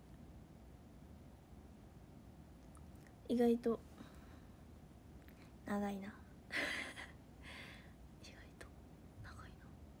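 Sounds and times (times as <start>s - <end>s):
woman whispering: 8.2s - 9.8s.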